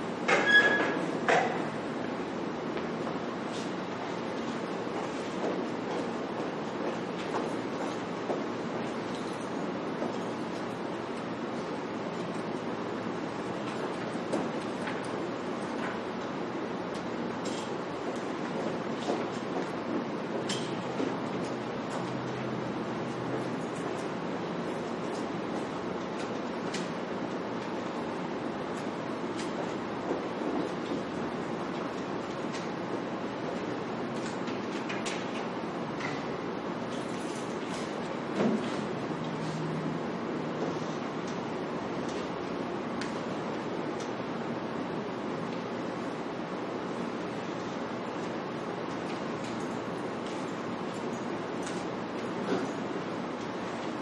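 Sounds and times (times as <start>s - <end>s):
room noise hiss and rumble: 0.0s - 54.0s.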